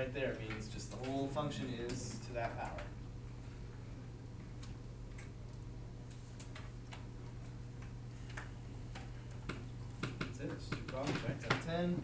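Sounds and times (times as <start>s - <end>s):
steady low hum: 0.0s - 12.0s
faint clicks and taps: 4.4s - 11.7s.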